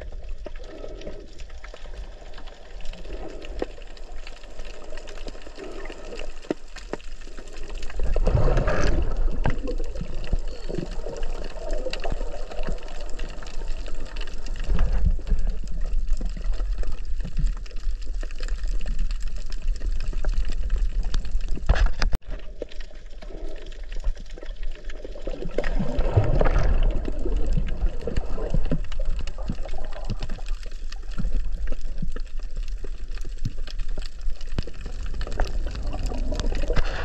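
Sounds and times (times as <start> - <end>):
underwater water sloshing: 0.0 - 37.0.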